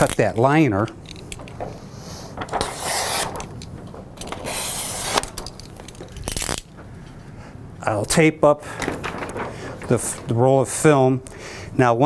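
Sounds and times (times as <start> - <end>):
cutter scraping film liner: 2.6 - 3.5, 4.3 - 5.4.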